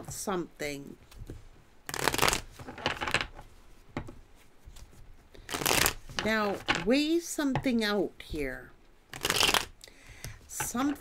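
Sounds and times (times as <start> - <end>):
cards being shuffled by hand: 1.0 - 6.9, 9.1 - 9.7.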